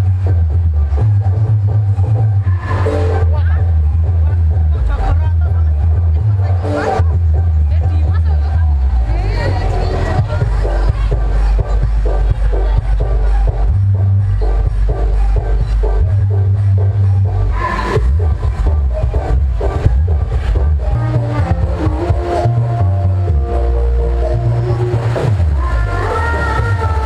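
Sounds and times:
loud dance music over loudspeakers: 0.0 - 27.0.

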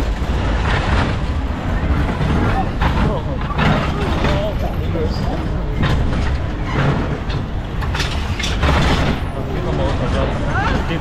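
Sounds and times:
roller coaster rumble: 0.0 - 11.0
riders' voices: 1.8 - 7.0.

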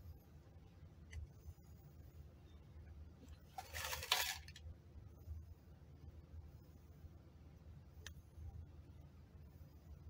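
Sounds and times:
plastic cups rustling scrape: 3.5 - 4.6.

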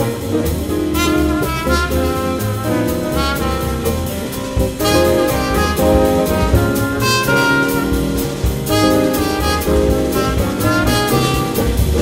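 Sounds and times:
double bass: 0.0 - 12.0
drum kit with cymbal beat: 0.0 - 12.0
piano: 0.0 - 12.0
trumpet: 0.0 - 12.0.

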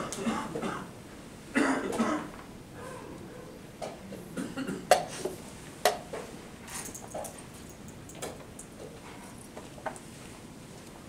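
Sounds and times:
person coughing: 0.0 - 3.0, 4.4 - 5.1.

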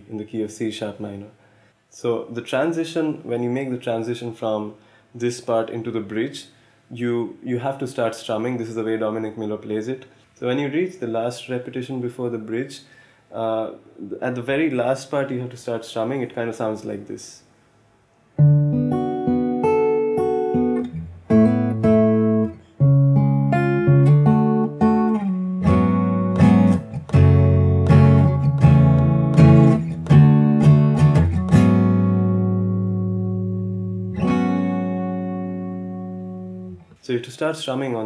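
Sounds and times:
acoustic guitar fingerstyle: 18.4 - 37.0.

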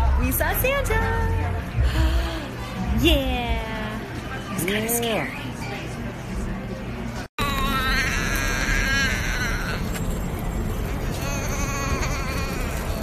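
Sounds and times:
steady background noise: 0.0 - 13.0
baby squealing: 7.4 - 10.0, 11.1 - 13.0.

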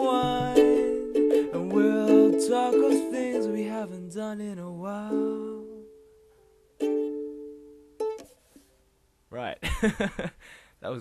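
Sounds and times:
strummed acoustic chords: 0.0 - 6.0.

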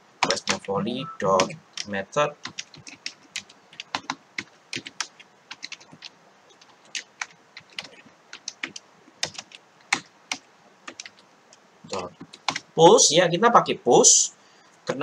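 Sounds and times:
typing on computer keyboard: 0.2 - 0.8, 1.4 - 11.2, 11.9 - 12.7.

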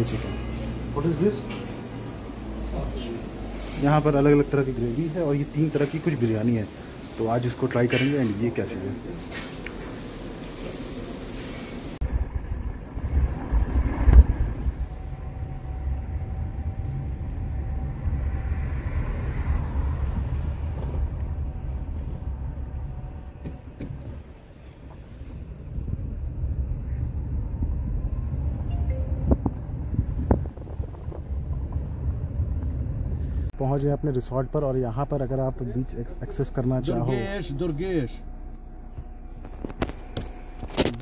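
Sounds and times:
car engine and road rumble: 11.0 - 41.0.

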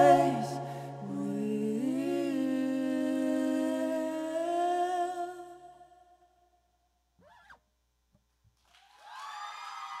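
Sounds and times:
man and woman singing in harmony: 0.0 - 5.8.

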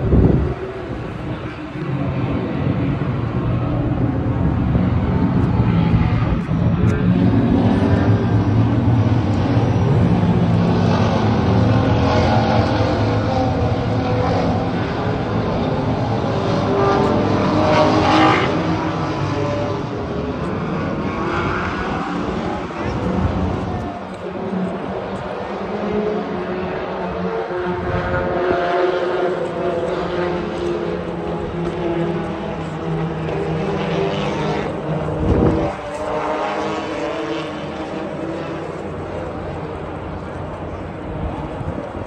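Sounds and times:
car engines running: 0.0 - 42.0.

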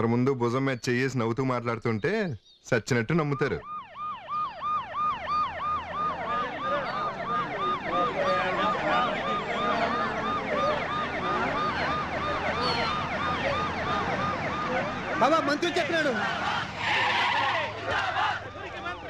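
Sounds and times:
sirens yelping: 3.1 - 19.0.

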